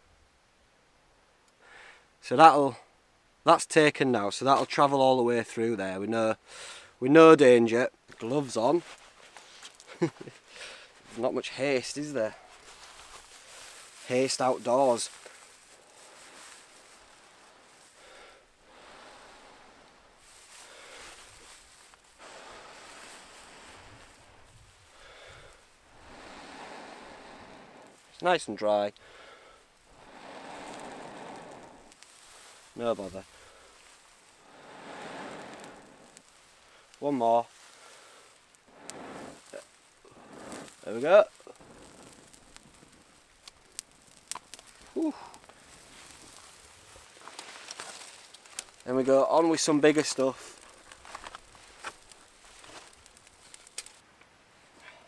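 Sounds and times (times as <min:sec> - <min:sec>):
breaths blown into tinder: 0:12.3 - 0:28.3, 0:28.9 - 0:48.8.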